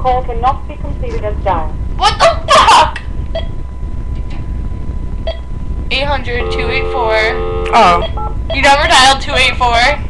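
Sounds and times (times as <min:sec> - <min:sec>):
low rumble: 0:00.0 - 0:10.0
faint blips: 0:03.3 - 0:04.4, 0:05.0 - 0:05.6, 0:06.2 - 0:08.8.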